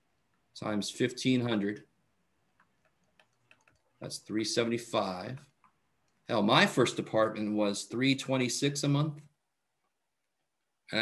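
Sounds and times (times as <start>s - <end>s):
stylus tapping on tablet screen: 2.4s - 4.0s.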